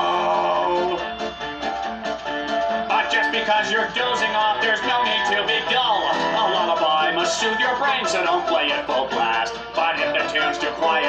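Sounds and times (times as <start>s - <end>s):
person singing: 0.0s - 1.3s, 2.7s - 11.0s
plucked guitar through tv speaker: 0.0s - 11.0s.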